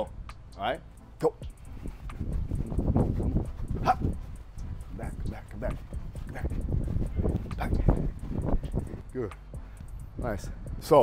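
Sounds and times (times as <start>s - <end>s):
footsteps shuffling on artificial turf: 0.9s - 10.5s.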